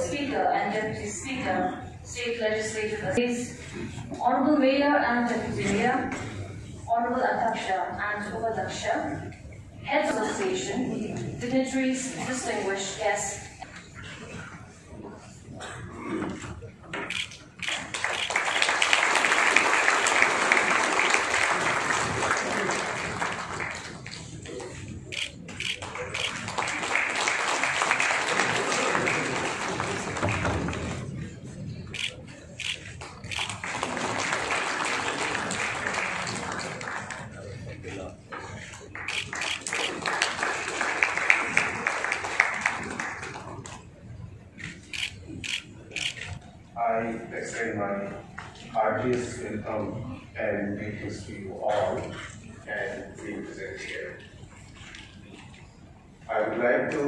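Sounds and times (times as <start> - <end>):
audience applause: 17.6 - 24.8, 25.8 - 31.1, 33.0 - 37.5, 38.9 - 43.7.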